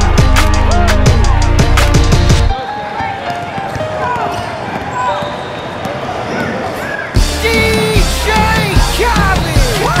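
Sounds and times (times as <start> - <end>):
players and spectators voices: 0.0 - 10.0
basketball bouncing on court: 3.2 - 6.7.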